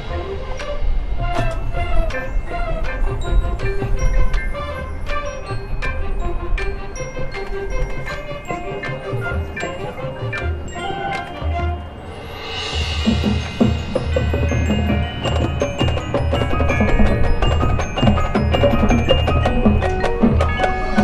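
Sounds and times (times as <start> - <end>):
mallet percussion and bells: 0.0 - 21.0
marching band playing: 0.0 - 21.0.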